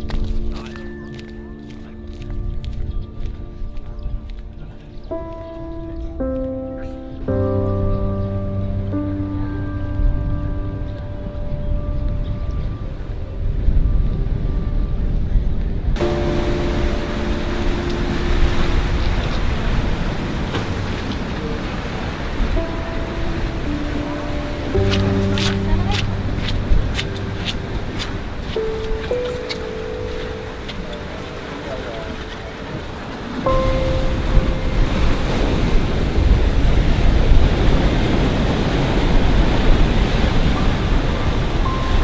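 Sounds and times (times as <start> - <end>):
slow sustained music chords: 0.0 - 42.0
steady rushing noise: 8.9 - 42.0.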